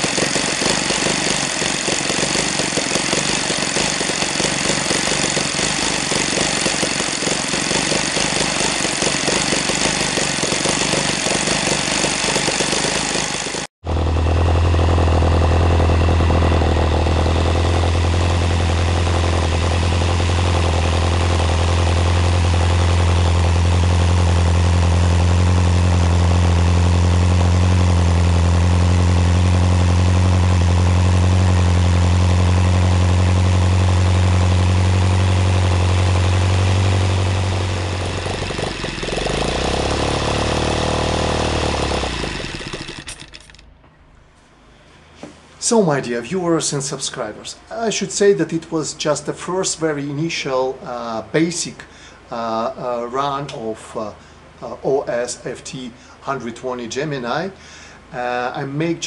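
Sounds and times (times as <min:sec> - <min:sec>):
model aircraft engine running: 0:00.0 - 0:43.6.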